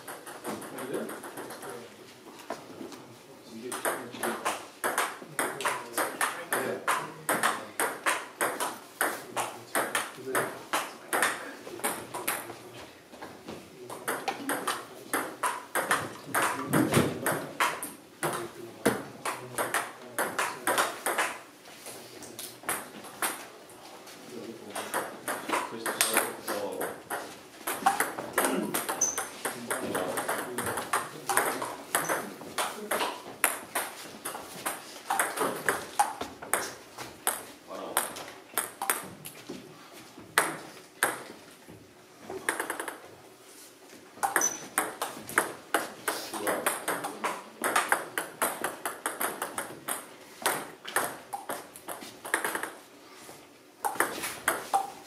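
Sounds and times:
table tennis ball clicking: 44.2 - 45.5.

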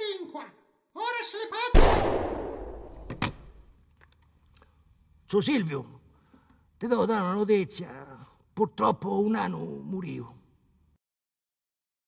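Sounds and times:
pistol shot with echo: 1.8 - 3.5
quieter sharp crack: 1.8 - 3.6.

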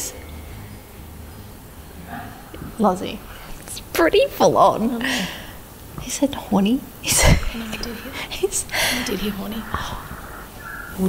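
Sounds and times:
faint low hum: 0.0 - 11.0
woman's voice: 2.7 - 5.4, 6.0 - 10.0.

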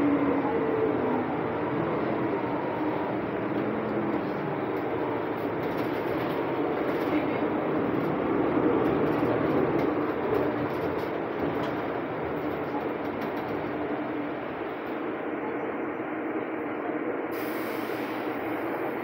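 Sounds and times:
road noise: 0.0 - 15.0
bus engine drone: 0.0 - 19.0.

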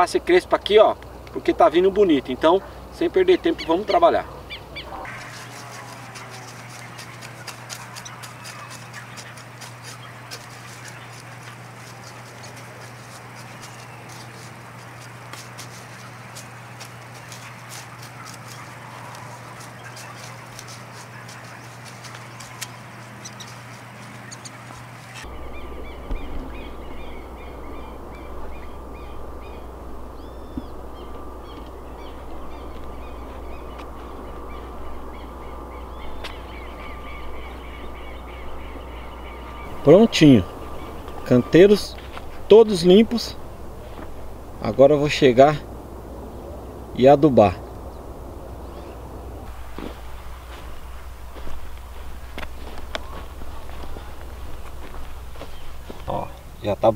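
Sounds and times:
birds calling: 0.0 - 56.9
low rumble: 24.2 - 56.6.

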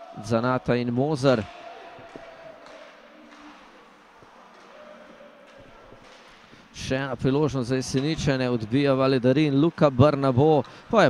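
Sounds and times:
hockey sticks and puck knocks: 1.5 - 3.8, 4.5 - 6.7.

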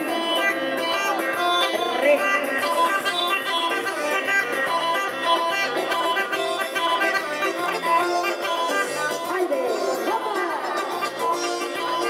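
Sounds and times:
bagpipe playing dance tune: 0.0 - 12.0.

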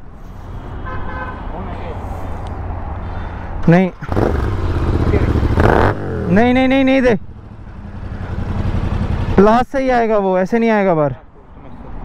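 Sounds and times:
motorcycle engine idling: 7.2 - 9.6.

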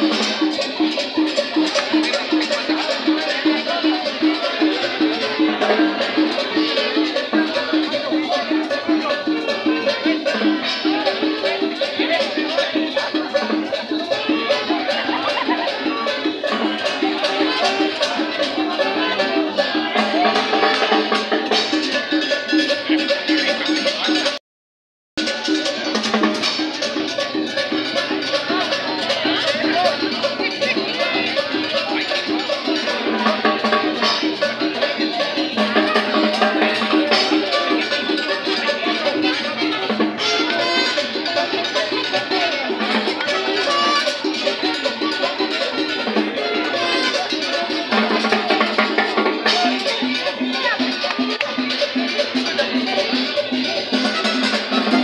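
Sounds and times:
cowbell: 0.0 - 24.4, 25.2 - 55.0
street band playing dance music: 0.0 - 24.4, 25.2 - 55.0.

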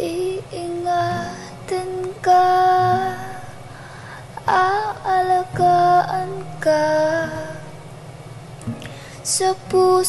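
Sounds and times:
girl singing held notes: 0.0 - 3.5, 4.4 - 7.7
soft musical accompaniment: 0.0 - 10.0.

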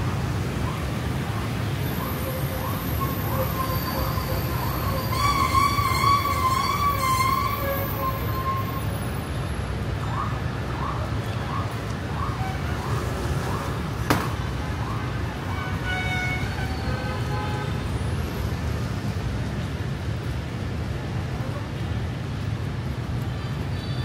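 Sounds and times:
city street traffic: 0.0 - 24.0.

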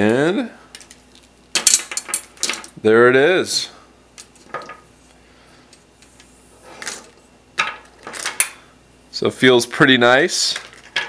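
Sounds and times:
cable handling rustles and clicks: 0.1 - 2.8, 10.4 - 11.0.

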